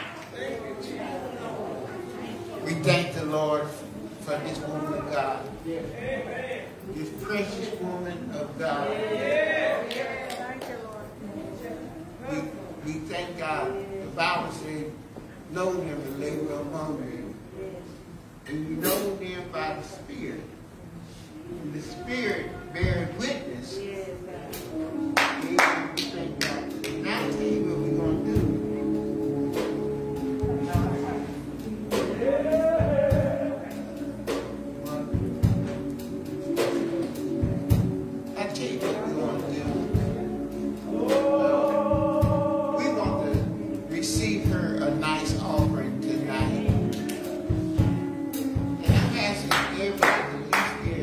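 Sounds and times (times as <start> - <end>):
held church keyboard chord: 18.4 - 51.0
echoing hand claps: 25.1 - 27.3, 46.8 - 47.4, 49.4 - 50.9.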